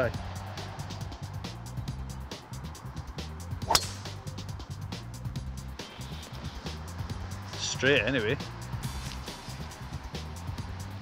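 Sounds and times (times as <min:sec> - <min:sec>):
background music with beat: 0:00.0 - 0:11.0
golf club striking ball: 0:03.6 - 0:04.3.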